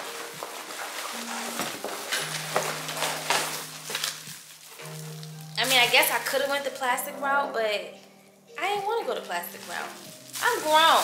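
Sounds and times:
plastic wrapping crinkling: 0.0s - 7.2s, 8.3s - 11.0s
soft background music: 0.0s - 11.0s.

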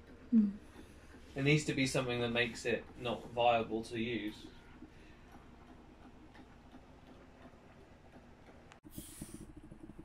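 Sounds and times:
light ticking: 0.0s - 10.0s.

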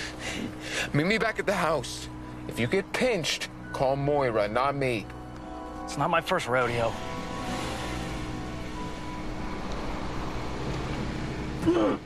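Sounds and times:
background music with sustained notes: 0.0s - 12.0s
car engine and tyres: 0.0s - 12.0s
car pulling away: 6.4s - 11.7s.

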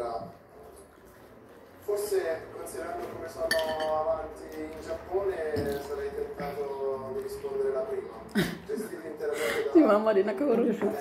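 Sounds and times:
cutlery clinking on ceramic plate: 3.5s - 4.0s.

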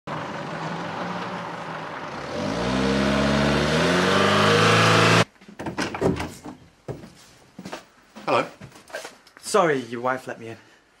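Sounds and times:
vehicle engine accelerating: 0.1s - 5.2s.

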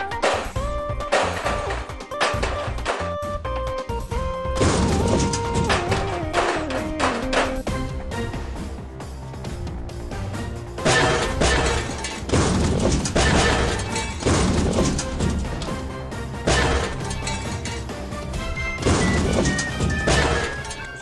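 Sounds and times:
crashing metal clangs: 0.0s - 3.3s, 4.5s - 7.8s, 10.8s - 21.0s
background music: 0.0s - 21.0s.

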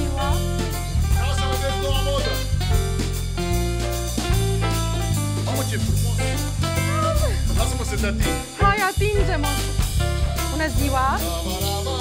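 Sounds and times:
upbeat band music: 0.0s - 12.0s.

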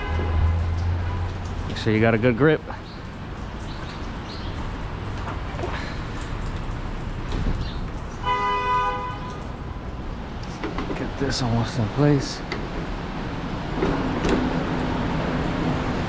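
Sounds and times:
car horn: 0.0s - 1.4s, 8.2s - 9.4s.

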